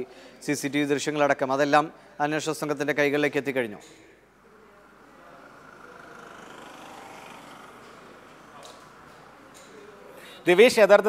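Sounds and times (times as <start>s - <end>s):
low hiss and murmur: 0.0s - 11.0s.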